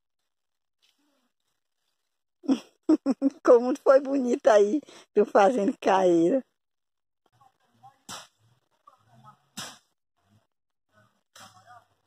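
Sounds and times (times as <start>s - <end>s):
sharp snaps: 9.6s - 9.9s.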